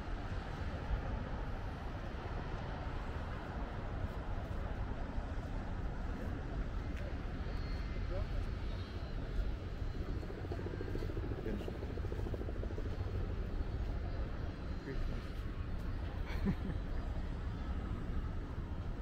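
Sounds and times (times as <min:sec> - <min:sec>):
low city rumble: 0:00.0 - 0:19.0
faint voices: 0:03.9 - 0:19.0
person laughing: 0:16.2 - 0:17.0.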